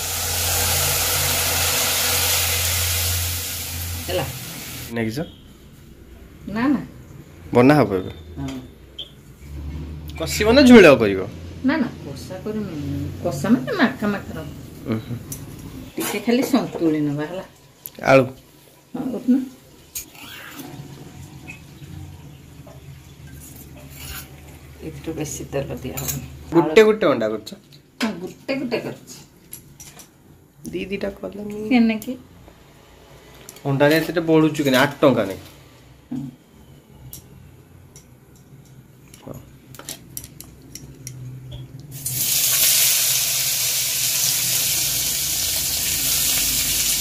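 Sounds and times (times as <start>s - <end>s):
potatoes sizzling in a wok: 0.0s - 5.0s, 42.0s - 47.0s
spoon scraping a steel bowl: 23.4s - 24.4s.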